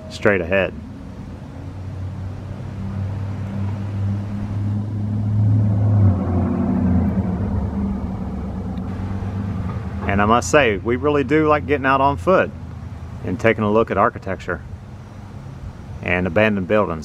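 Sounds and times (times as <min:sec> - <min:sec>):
vehicle engine humming: 0:00.0 - 0:17.0.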